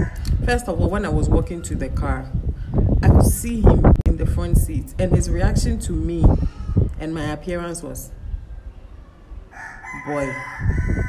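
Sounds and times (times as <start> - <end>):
rooster crowing: 0.0 - 0.2, 9.5 - 11.0.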